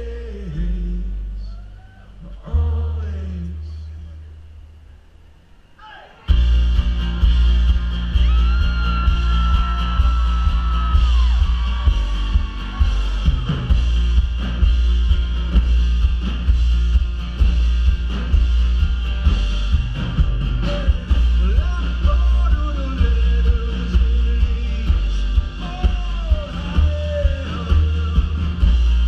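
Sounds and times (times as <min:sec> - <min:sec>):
heavy bass: 0:00.0 - 0:05.3, 0:06.3 - 0:29.0
live band amplified music: 0:06.3 - 0:29.0.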